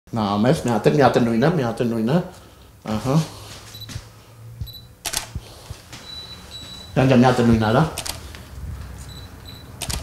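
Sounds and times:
camera shutter double click: 0:05.0 - 0:05.3, 0:09.8 - 0:10.0.

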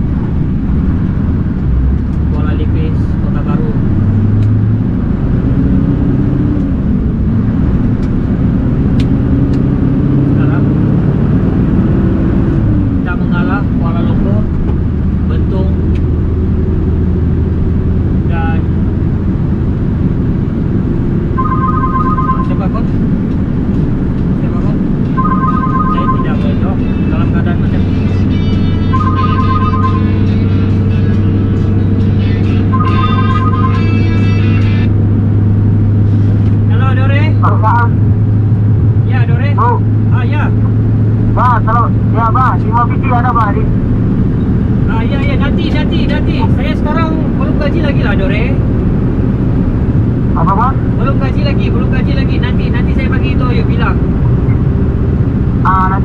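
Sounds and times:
truck diesel engine drone: 0:00.0 - 0:56.0.

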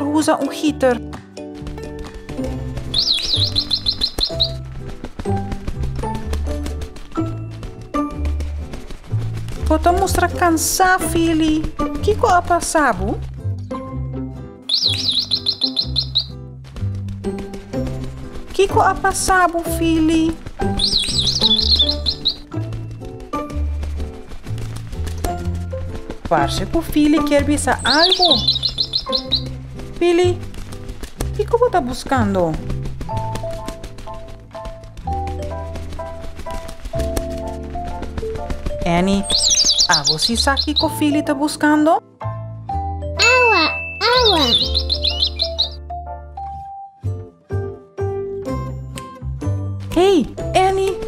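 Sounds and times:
cartoon bird chirp trill: 0:14.7 - 0:16.3, 0:43.2 - 0:45.8
light cartoon tune: 0:42.8 - 0:47.0.

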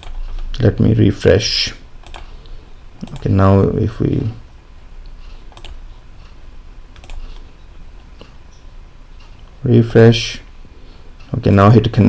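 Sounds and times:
low steady hum: 0:00.0 - 0:12.0
mouse and keyboard clicks: 0:02.0 - 0:02.3, 0:03.0 - 0:03.3, 0:05.5 - 0:05.8, 0:06.9 - 0:07.5.

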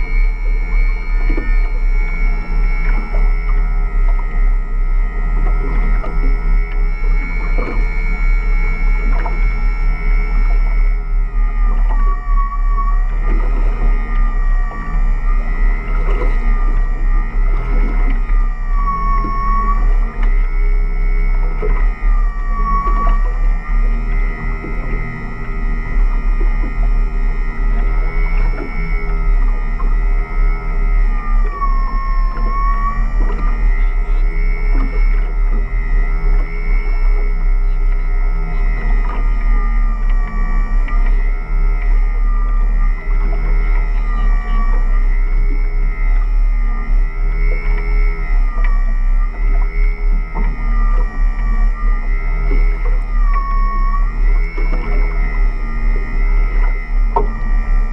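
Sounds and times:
low rumble: 0:00.0 - 0:57.9
winch motor whining: 0:00.0 - 0:57.9.

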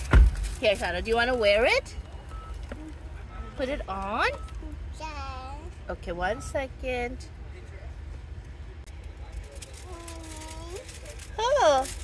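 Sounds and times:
car engine idling: 0:00.0 - 0:05.0.

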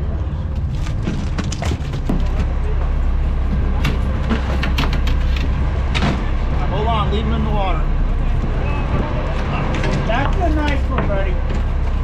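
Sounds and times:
boat engine rumble: 0:00.0 - 0:12.0
wind: 0:00.0 - 0:12.0
indistinct voices: 0:02.1 - 0:12.0.

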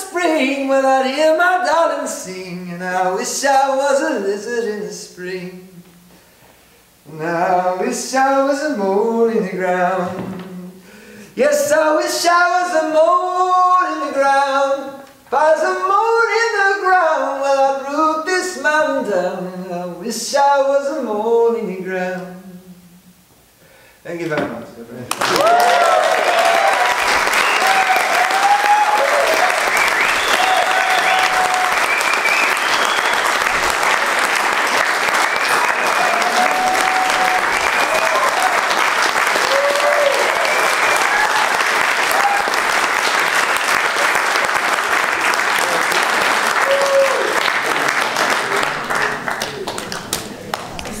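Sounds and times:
audience applauding: 0:25.1 - 0:51.0
crowd shouts and cheers: 0:25.3 - 0:32.6, 0:35.4 - 0:42.8, 0:46.4 - 0:47.5.

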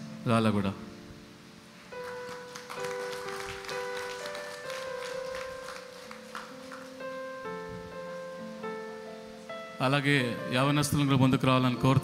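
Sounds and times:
slow organ-like keyboard melody: 0:00.0 - 0:12.0.

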